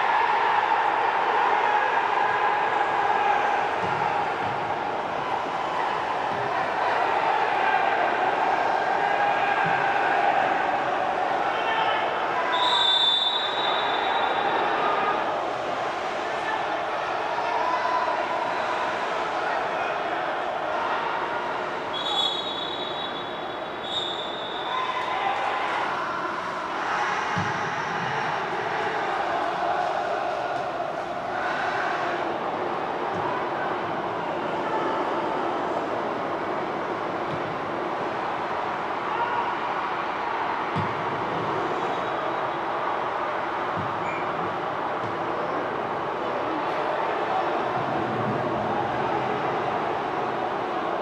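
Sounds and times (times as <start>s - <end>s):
players shouting: 0.0s - 51.0s
referee's whistle blasts: 12.5s - 14.8s, 21.9s - 25.1s.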